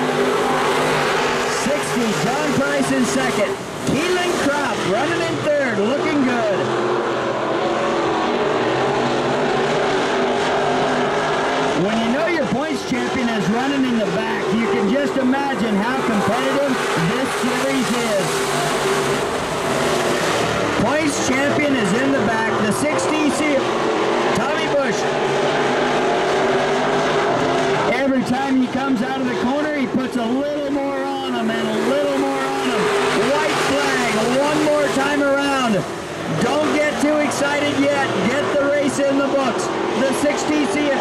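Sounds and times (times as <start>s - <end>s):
race car engines droning: 0.0s - 41.0s.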